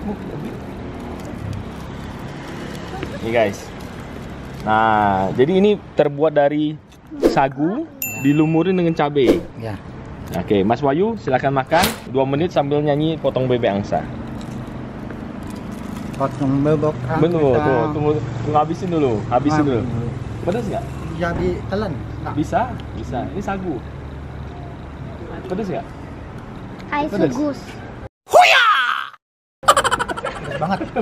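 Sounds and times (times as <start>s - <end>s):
aluminium foil crinkling: 0.0s - 5.0s, 14.3s - 16.4s.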